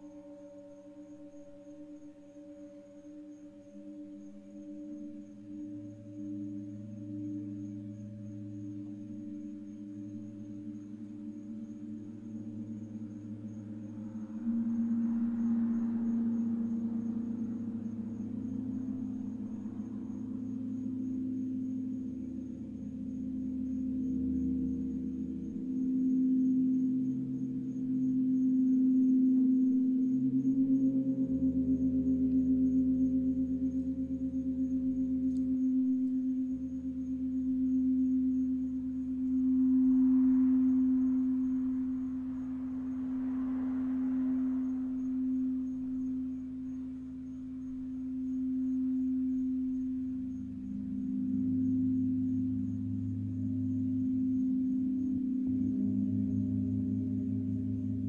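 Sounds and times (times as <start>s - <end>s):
crystal singing bowl ringing: 0.0s - 58.0s
low gong and bowl tones: 0.0s - 58.0s
soft wash of noise: 4.5s - 58.0s.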